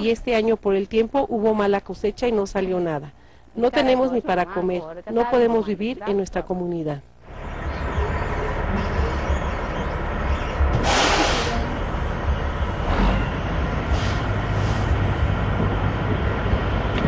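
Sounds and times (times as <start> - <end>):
diesel bus engine rumbling: 7.2 - 17.0
air brake hissing: 10.8 - 11.8, 13.9 - 15.0.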